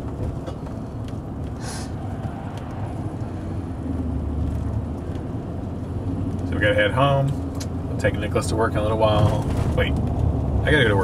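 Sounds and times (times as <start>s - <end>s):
engine and tyre rumble in car: 0.0s - 11.0s
brief hiss: 1.6s - 1.9s.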